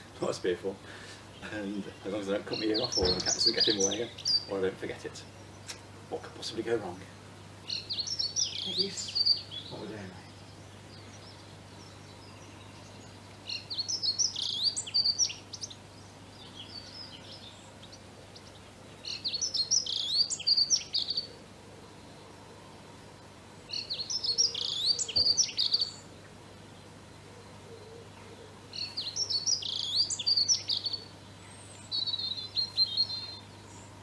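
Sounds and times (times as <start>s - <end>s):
songbird singing high notes: 1.7s - 5.9s, 7.6s - 15.8s, 18.4s - 21.4s, 23.7s - 26.1s, 28.8s - 33.9s.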